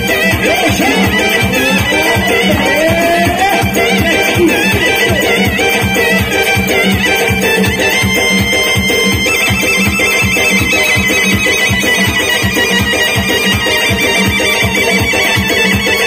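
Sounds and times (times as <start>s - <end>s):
frame drum and double-headed drum beat: 0.1s - 13.4s
high wavering melody: 0.5s - 9.0s.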